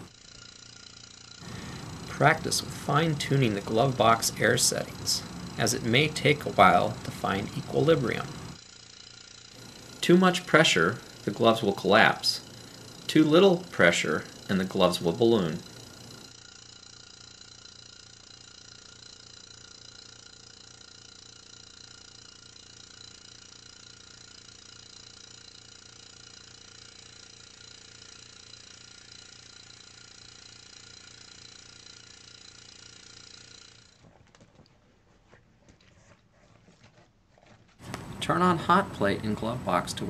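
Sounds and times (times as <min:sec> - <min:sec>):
machine hum: 0:00.0 - 0:40.0.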